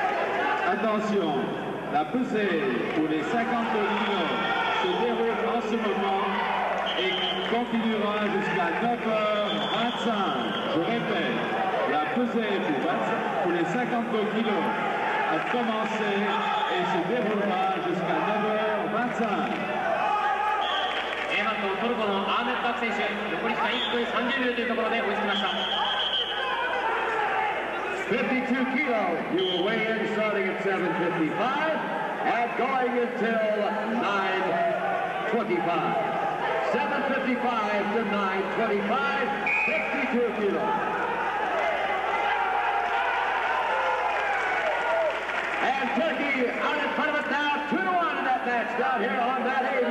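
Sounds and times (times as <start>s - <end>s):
man talking: 0.7s - 19.6s, 21.3s - 25.7s, 28.0s - 40.8s, 45.6s - 49.9s.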